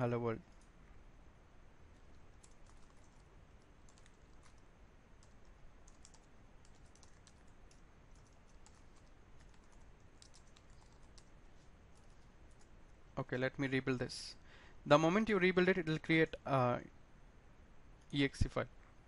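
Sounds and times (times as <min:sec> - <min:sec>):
faint keyboard typing: 0:00.0 - 0:00.8, 0:01.9 - 0:13.0
low background hiss: 0:00.0 - 0:19.0.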